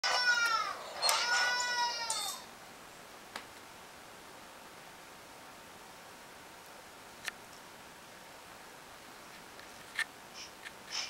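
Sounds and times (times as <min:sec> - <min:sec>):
high-pitched wailing calls: 0:00.0 - 0:02.5.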